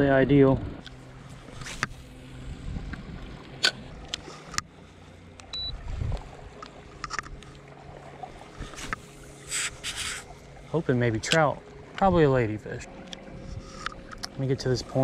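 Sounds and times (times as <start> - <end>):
short high beep: 5.5 - 5.8.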